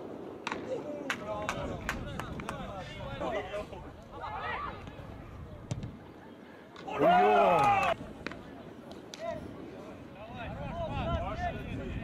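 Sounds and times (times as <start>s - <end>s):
players shouting: 6.8s - 8.0s.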